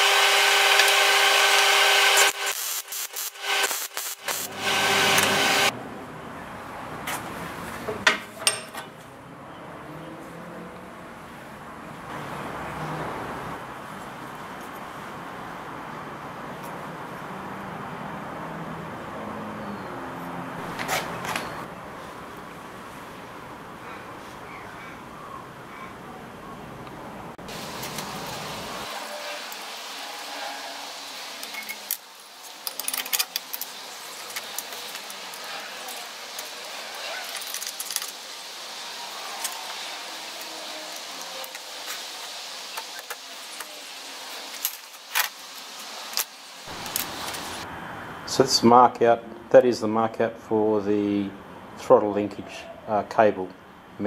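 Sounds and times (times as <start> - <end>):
metal tools clinking: 32.6 - 38.2.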